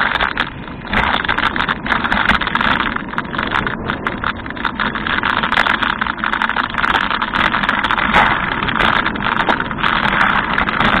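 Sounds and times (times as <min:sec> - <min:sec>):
bike clicking and rattling: 0:00.0 - 0:11.0
wind rushing on microphone: 0:00.0 - 0:11.0.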